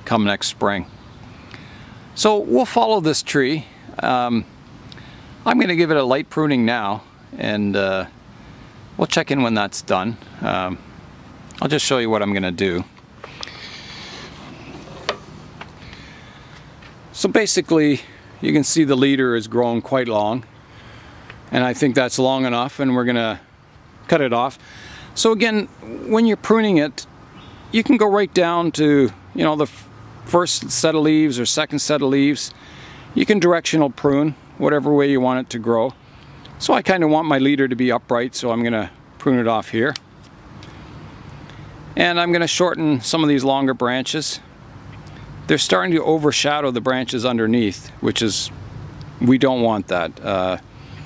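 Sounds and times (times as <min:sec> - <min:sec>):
faint outdoor background: 0:00.0 - 0:51.0
handheld camera handling noise: 0:13.0 - 0:17.0.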